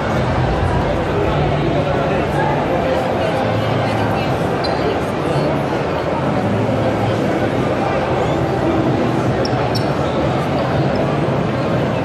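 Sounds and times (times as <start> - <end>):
crowd hubbub in echoing hall: 0.0 - 12.0.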